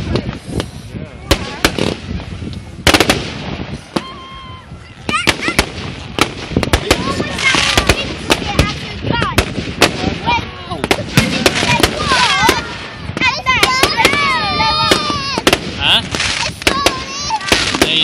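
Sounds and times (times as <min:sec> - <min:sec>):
crackling hiss of fireworks: 0:00.0 - 0:18.0
fireworks banging: 0:00.0 - 0:18.0.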